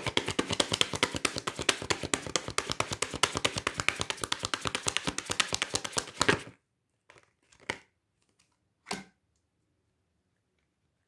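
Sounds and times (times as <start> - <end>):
cards being shuffled: 0.0 - 8.6.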